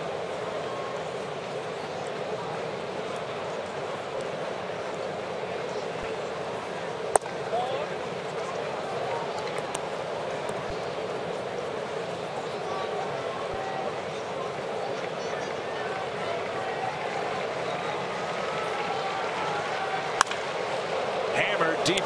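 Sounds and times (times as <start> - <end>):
ballpark crowd noise: 0.0 - 22.0
wooden bat cracking on ball: 7.1 - 7.4, 20.2 - 20.5.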